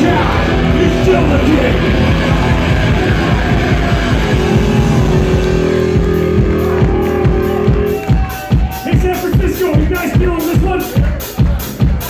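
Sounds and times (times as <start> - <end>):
punk rock band playing: 0.0 - 12.0.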